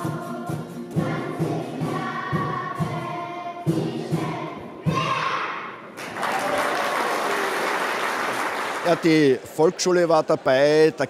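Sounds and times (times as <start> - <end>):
children's choir singing: 0.0 - 5.9.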